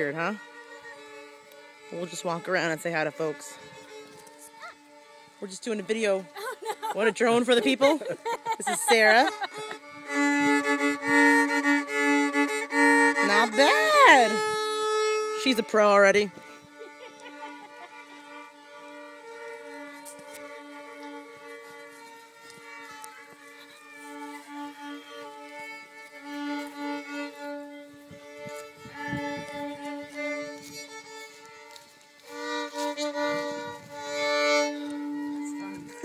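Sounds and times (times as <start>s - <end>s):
fiddle playing double stops: 0.0s - 36.0s.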